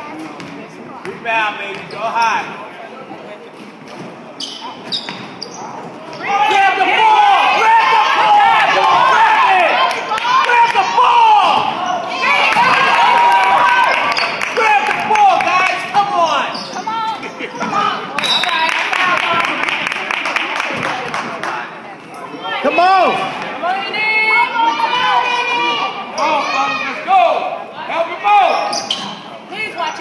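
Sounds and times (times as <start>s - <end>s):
spectators shouting and cheering: 6.0s - 21.6s, 22.4s - 28.8s.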